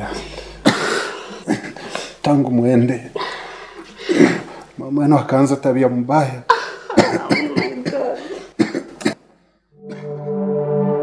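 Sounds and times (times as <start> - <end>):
person coughing: 0.1 - 2.0, 6.5 - 9.2.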